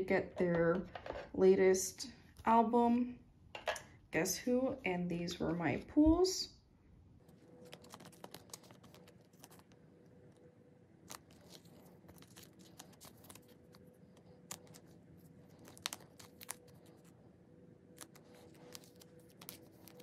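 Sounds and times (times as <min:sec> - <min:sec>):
plastic sleeves crinkling: 0:07.2 - 0:17.2, 0:17.9 - 0:20.0.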